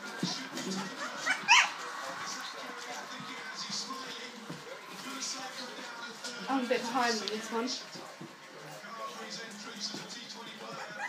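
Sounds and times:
puppy yelping: 0:00.9 - 0:01.8, 0:10.8 - 0:11.0.

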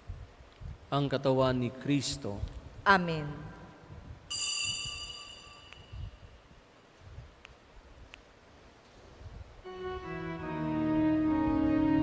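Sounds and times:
high bell-like ringing tone: 0:04.3 - 0:06.4
click: 0:07.4 - 0:08.3.

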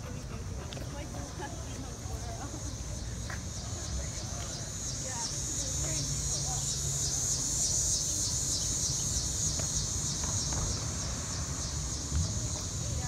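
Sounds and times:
insects chirping: 0:01.9 - 0:13.0.

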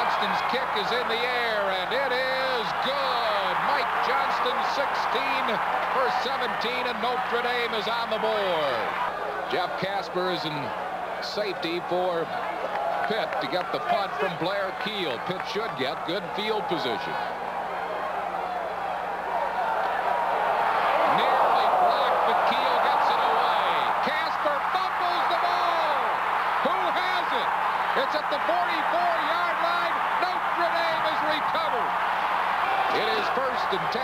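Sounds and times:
stadium crowd cheering: 0:00.0 - 0:34.0.

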